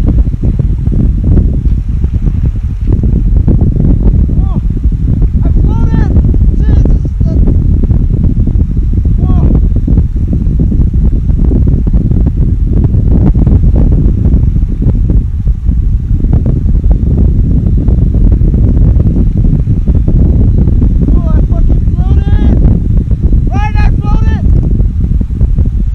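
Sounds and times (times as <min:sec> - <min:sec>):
wind buffeting microphone: 0:00.0 - 0:25.9.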